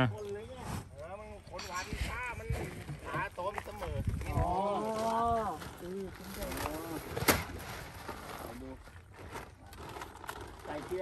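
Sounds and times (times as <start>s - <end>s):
low outdoor background: 0.0s - 11.0s.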